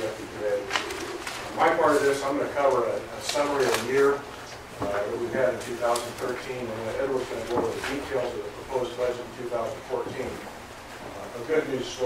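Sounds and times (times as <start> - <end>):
man speaking: 0.0 - 10.5, 11.1 - 12.0.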